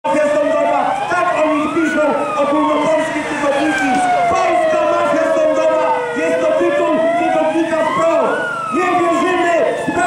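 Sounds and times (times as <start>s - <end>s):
siren wailing: 0.1s - 10.0s
voices: 0.1s - 10.0s.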